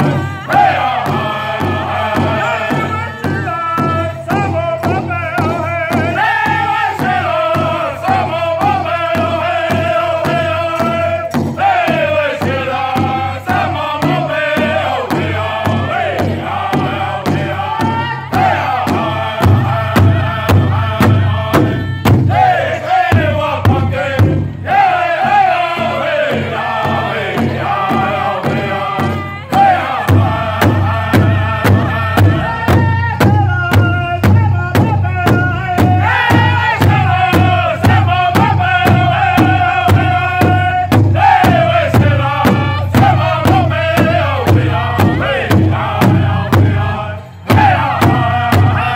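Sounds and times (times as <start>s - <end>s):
drum beaten with drumsticks: 0.0s - 48.9s
men singing in unison: 0.0s - 48.9s.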